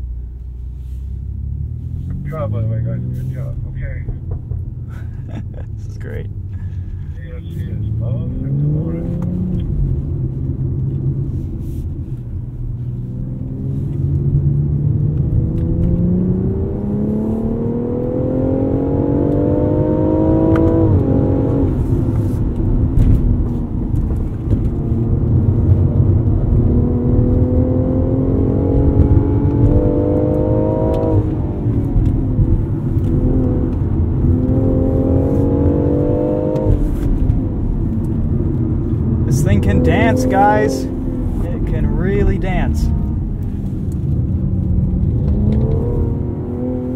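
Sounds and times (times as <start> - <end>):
car engine accelerating: 0.0 - 46.9.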